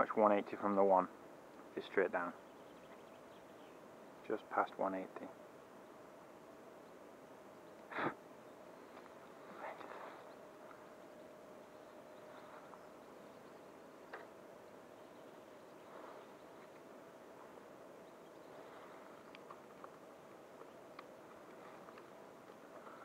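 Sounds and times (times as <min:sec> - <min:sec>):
faint steady whine: 0:00.0 - 0:23.0
light clicks: 0:19.2 - 0:23.0.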